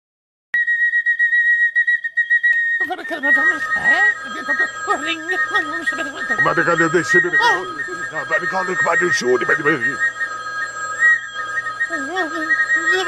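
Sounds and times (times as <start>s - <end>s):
kettle whistling: 0.6s - 13.0s.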